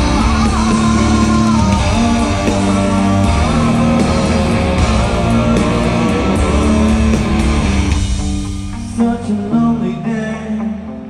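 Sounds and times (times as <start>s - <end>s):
bass guitar: 0.0s - 11.0s
drums: 0.0s - 11.0s
electric guitar: 0.0s - 11.0s.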